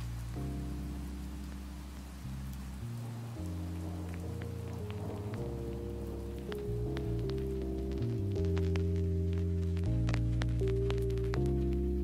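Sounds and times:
rain-like dripping ticks: 0.0s - 12.0s
soft sustained low chords: 0.0s - 12.0s.

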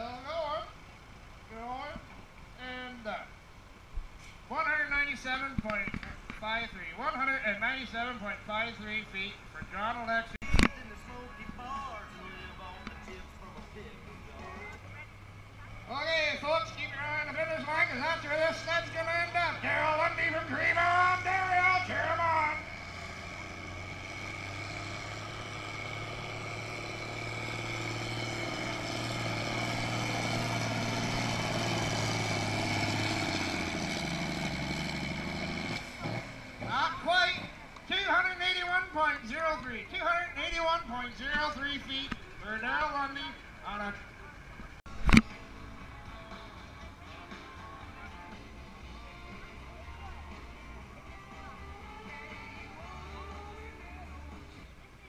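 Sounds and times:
diesel tractor engine at full throttle: 10.4s - 38.8s.

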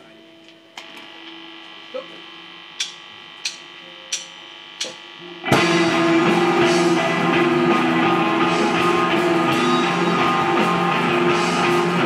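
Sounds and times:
amplifier hum and buzz: 0.0s - 12.0s
steady held tones: 0.0s - 12.0s.

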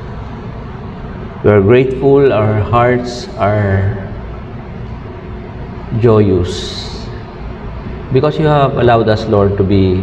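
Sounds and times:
room noise hum and hiss: 0.0s - 10.0s.

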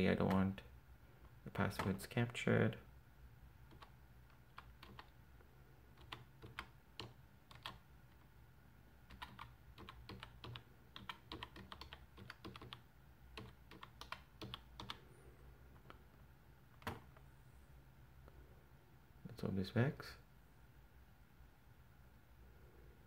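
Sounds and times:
keyboard keystrokes: 3.7s - 5.1s, 6.0s - 7.8s, 9.1s - 12.8s, 13.4s - 15.0s.

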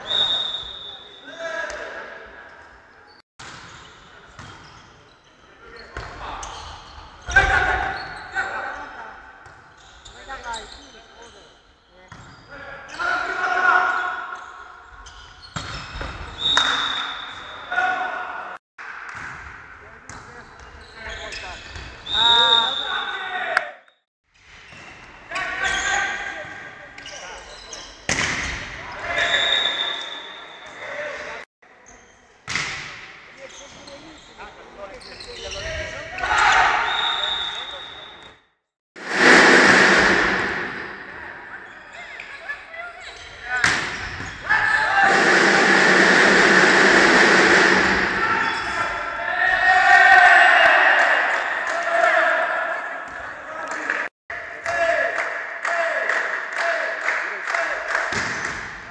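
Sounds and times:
referee whistle blasts: 0.0s - 1.4s, 16.4s - 17.7s, 22.0s - 23.3s, 29.2s - 30.8s, 36.7s - 38.4s
players shouting and cheering: 16.6s - 18.6s, 39.1s - 58.5s.

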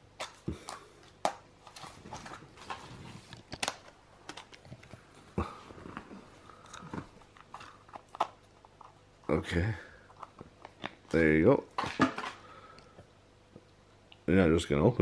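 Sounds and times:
plastic egg clicks and scrapes: 6.6s - 9.4s.

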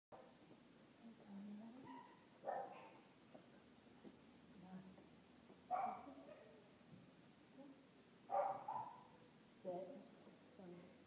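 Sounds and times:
dog barking: 1.8s - 3.1s, 5.7s - 6.6s, 8.3s - 9.2s.

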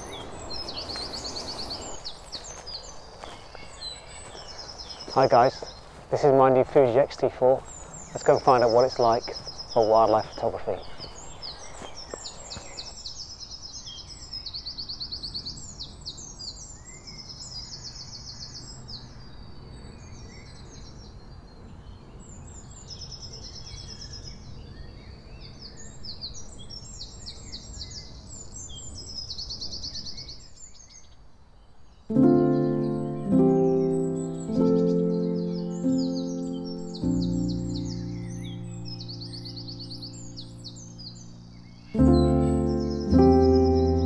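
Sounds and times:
songbirds singing trills: 0.0s - 44.0s.

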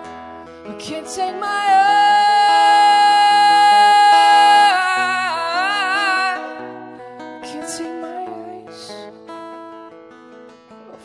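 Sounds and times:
acoustic guitar: 0.0s - 11.0s
woman singing a high note: 0.8s - 6.7s.

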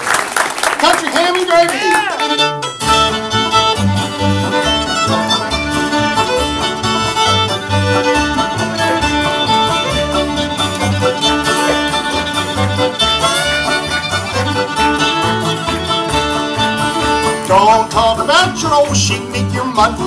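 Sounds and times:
fiddle playing: 1.5s - 20.0s
plucked upright bass: 2.3s - 20.0s
strummed acoustic guitar: 2.3s - 20.0s.

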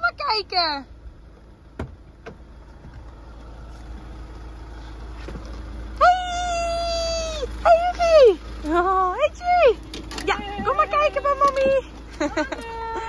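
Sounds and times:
low outdoor rumble: 0.0s - 13.0s
woman's high-pitched call: 6.0s - 11.8s.

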